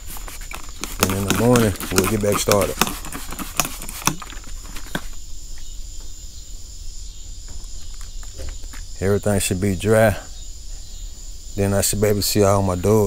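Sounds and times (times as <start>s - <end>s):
spray bottle squirts: 0.0s - 5.0s
steady hiss: 0.0s - 13.0s.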